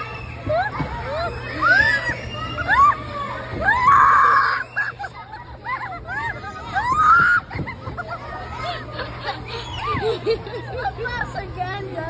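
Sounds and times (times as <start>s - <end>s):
children laughing and shrieking: 0.0s - 12.0s.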